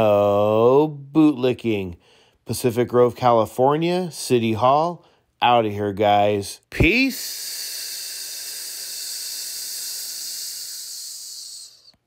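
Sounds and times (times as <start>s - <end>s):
high-pitched hiss: 6.8s - 12.0s.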